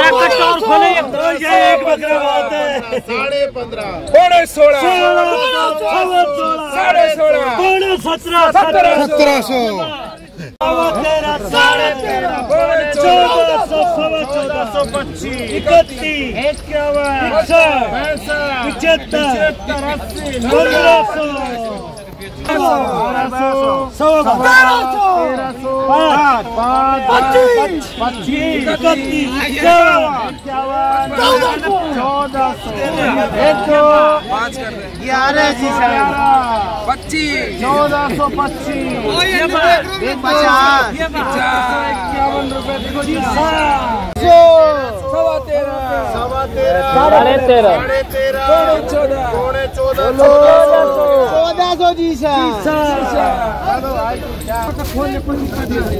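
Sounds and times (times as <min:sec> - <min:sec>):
men calling out auction bids: 0:00.0 - 0:55.9
men's voices: 0:00.0 - 0:55.9.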